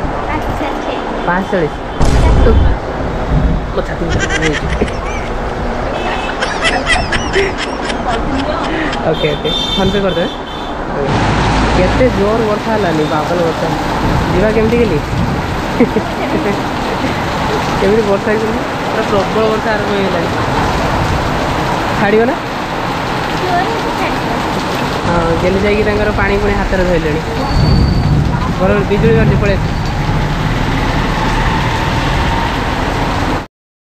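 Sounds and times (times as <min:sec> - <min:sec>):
heavy rain pouring: 0:00.0 - 0:33.5.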